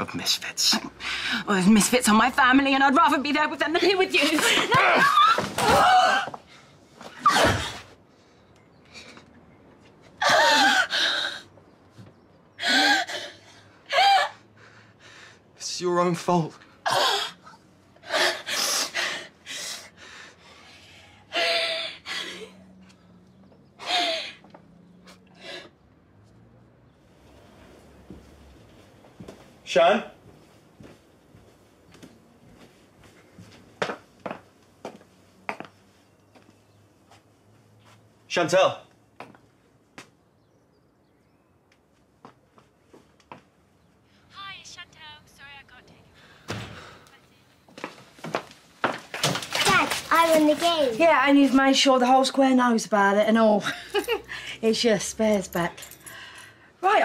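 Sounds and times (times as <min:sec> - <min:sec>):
door slamming shut: 0:46.5 - 0:47.0.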